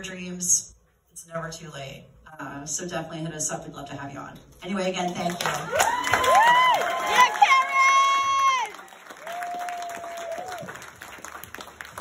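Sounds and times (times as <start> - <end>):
audience applauding: 5.3 - 12.0
crowd whooping: 5.7 - 11.2.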